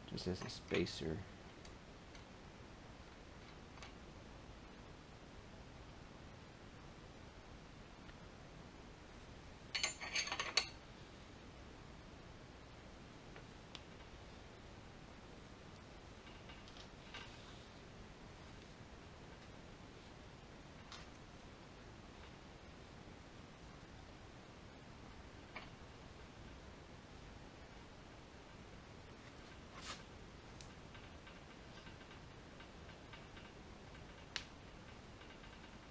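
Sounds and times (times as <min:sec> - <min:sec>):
metal parts and tools clinking: 0:09.7 - 0:10.8.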